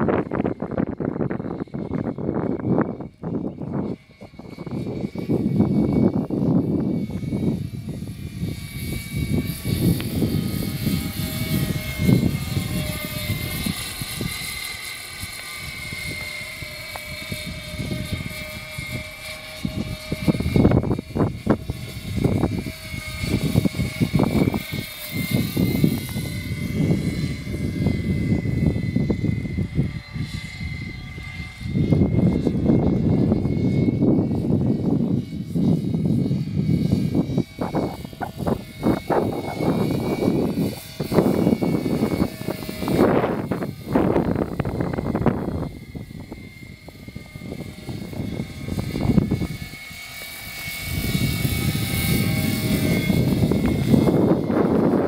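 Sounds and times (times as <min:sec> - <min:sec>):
model aircraft rotor whine: 0:00.0 - 0:55.0
gusty low rumble: 0:15.5 - 0:55.0.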